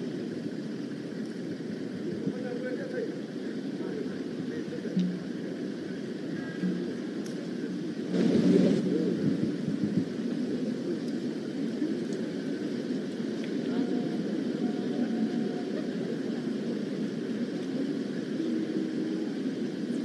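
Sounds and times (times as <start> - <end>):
low outdoor rumble: 0.0 - 20.0
murmur of voices: 0.0 - 20.0.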